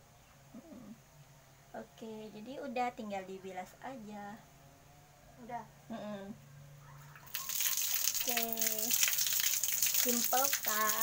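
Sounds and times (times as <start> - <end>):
water pouring and splashing: 7.3 - 11.0.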